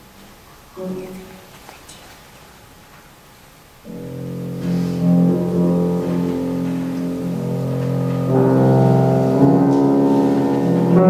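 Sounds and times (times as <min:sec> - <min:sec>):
piano and strings playing chords: 0:03.8 - 0:11.0.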